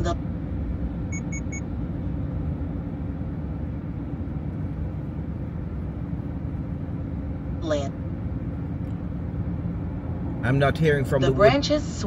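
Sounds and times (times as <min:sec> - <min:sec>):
car road and engine noise: 0:00.0 - 0:12.0
quick high beeps: 0:01.1 - 0:01.7.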